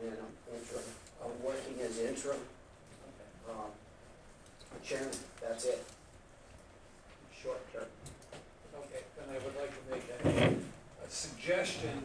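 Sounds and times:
loud knock and scrape: 10.0s - 10.7s.

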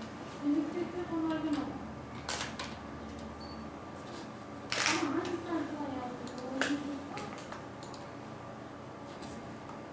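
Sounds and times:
keyboard and mouse clicks: 6.2s - 8.1s.

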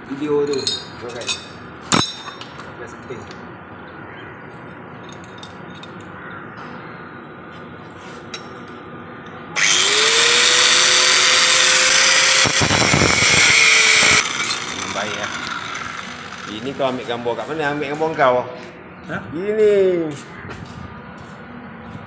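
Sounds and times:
angle grinder cutting steel: 9.6s - 18.2s.

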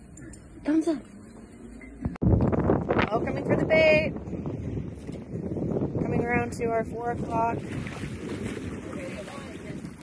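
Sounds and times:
wind buffeting microphone: 2.0s - 10.0s.

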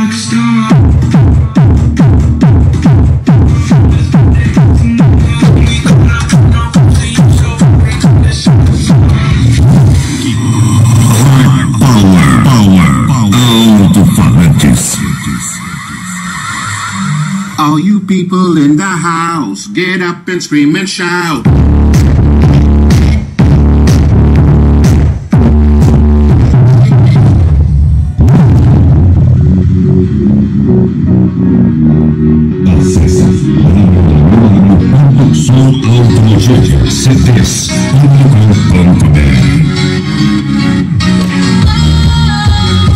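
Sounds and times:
rapid bass kicks: 0.0s - 15.7s, 21.4s - 39.9s, 40.8s - 42.9s
loud electronic dance music: 0.0s - 42.9s
gliding synth sweeps: 15.0s - 17.6s.

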